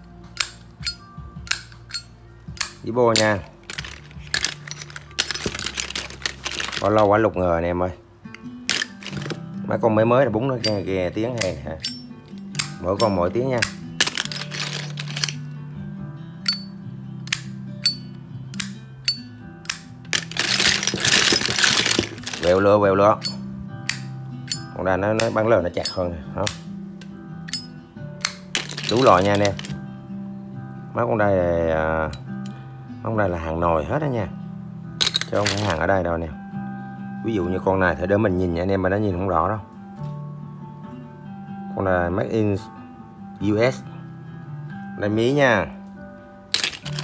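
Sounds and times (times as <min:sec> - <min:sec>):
background music: 0:00.0 - 0:47.0
metal lighter lid clicking: 0:00.4 - 0:03.3, 0:11.4 - 0:14.4, 0:16.4 - 0:20.0, 0:23.2 - 0:26.7
metal lighter lids clicking: 0:00.4 - 0:06.9, 0:08.3 - 0:09.4, 0:10.6 - 0:15.5, 0:16.4 - 0:22.6, 0:23.2 - 0:29.8, 0:35.0 - 0:35.8, 0:46.5 - 0:47.0.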